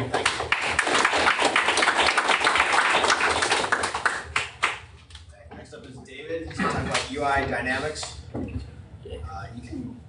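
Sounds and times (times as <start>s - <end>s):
audience applauding: 0.0s - 4.9s.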